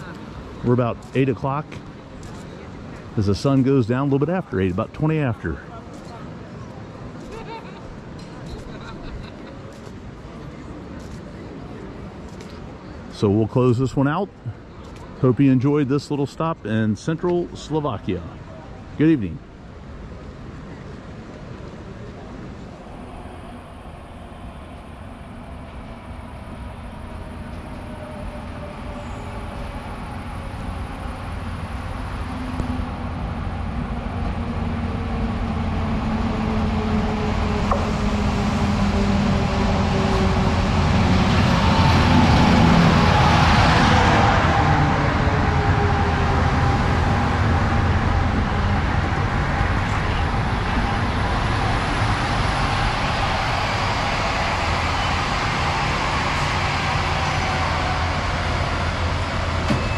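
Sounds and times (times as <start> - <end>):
locomotive engine passing: 0.0 - 59.9
train coaches rumbling past: 0.0 - 59.9.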